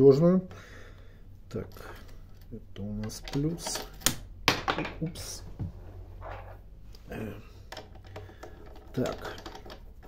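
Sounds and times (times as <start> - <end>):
low steady hum: 0.0 - 10.0
cable handling clicks and rustling: 1.5 - 4.3, 6.2 - 10.0.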